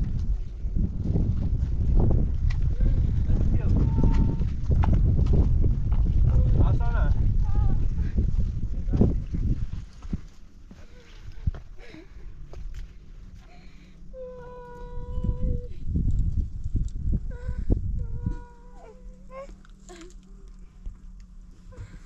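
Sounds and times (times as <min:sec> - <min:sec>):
low rumble: 0:00.0 - 0:22.0.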